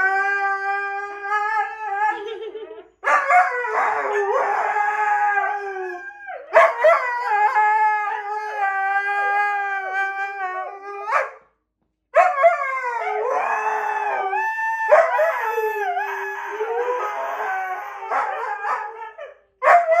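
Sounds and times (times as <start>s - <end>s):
huskies howling: 12.2s - 20.0s.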